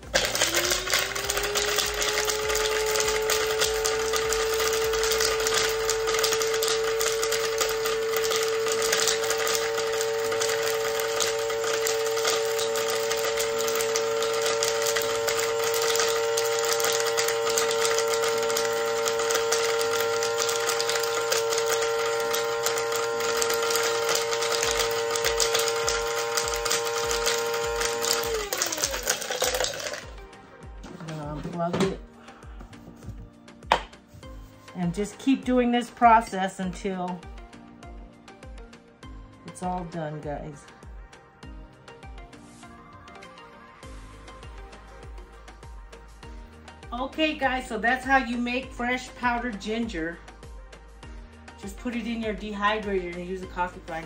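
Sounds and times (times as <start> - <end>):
hard pieces rattling in grinder: 0.0 - 30.2
coffee grinder motor whine: 0.0 - 33.9, 43.9 - 54.0.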